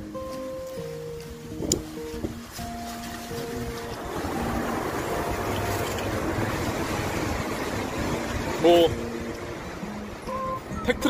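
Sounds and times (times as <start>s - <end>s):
tyres hissing on wet road: 0.8s - 10.7s.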